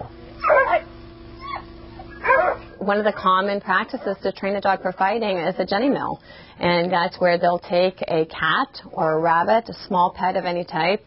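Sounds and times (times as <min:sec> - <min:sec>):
steady low hum: 0:00.0 - 0:11.0
dog whining: 0:00.4 - 0:02.8
dog yelping: 0:00.4 - 0:02.8.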